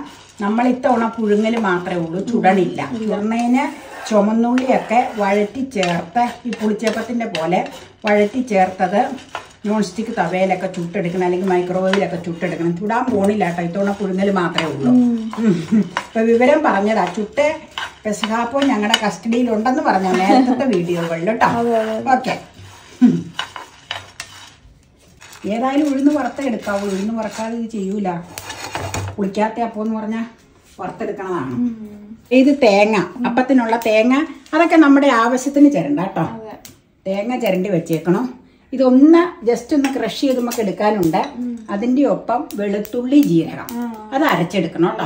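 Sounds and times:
woman talking: 0.0 - 22.5, 25.4 - 28.3, 29.2 - 45.0
woman's voice: 0.0 - 23.2, 29.2 - 45.0
spatula scraping grains in pan: 0.0 - 29.1.

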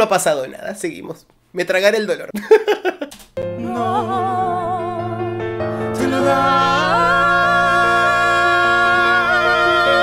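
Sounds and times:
ballad accompaniment: 3.4 - 10.0.

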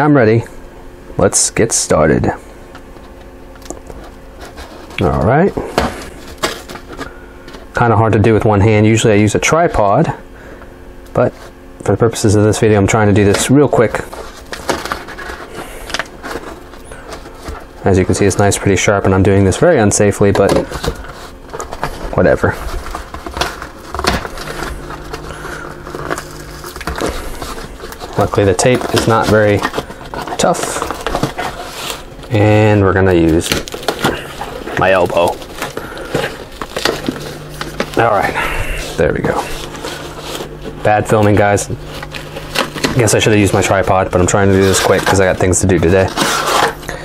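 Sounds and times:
packing tape tearing: 3.5 - 7.6, 13.3 - 18.3, 20.4 - 47.0
cardboard box tearing open: 20.7 - 32.4, 33.2 - 40.5, 44.6 - 46.8
knife scraping packing tape: 46.0 - 46.8.

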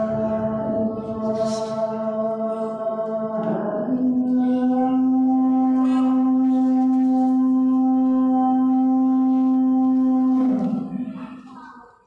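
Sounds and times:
man singing call to prayer: 0.0 - 11.5.

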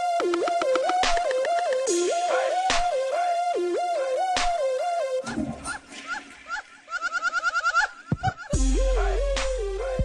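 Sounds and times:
hip-hop beat: 0.0 - 5.0, 8.1 - 10.0.

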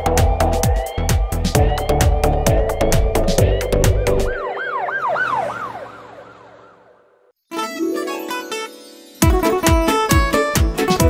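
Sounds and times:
electronic song beat: 0.0 - 5.4, 9.2 - 11.0
cartoon police siren: 0.0 - 7.3.

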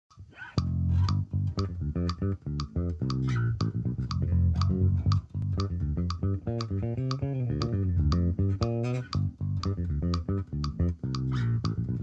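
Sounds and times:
electric bass played fingerstyle: 0.1 - 12.0.

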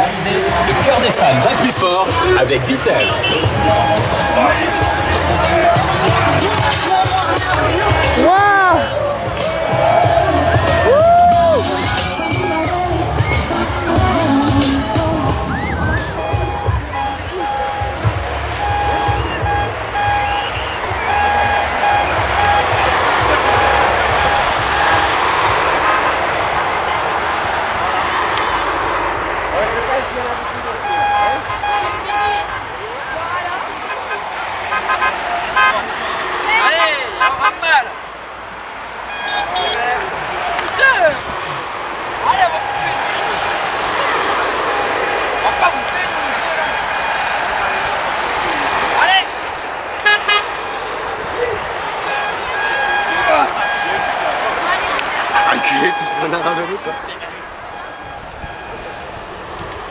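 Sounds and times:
vehicle horns tooting: 0.0 - 38.1, 38.9 - 59.9
crowd voices and cries: 0.0 - 59.9.

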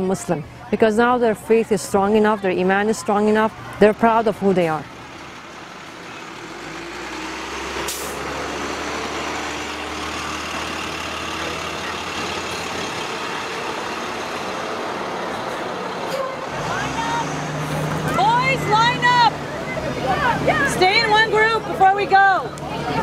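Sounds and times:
voices: 0.0 - 7.2, 8.2 - 23.0
bus engine running: 3.2 - 23.0.

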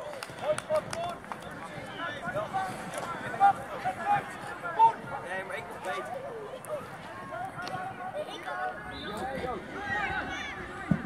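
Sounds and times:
teenagers shouting: 8.0 - 11.0.

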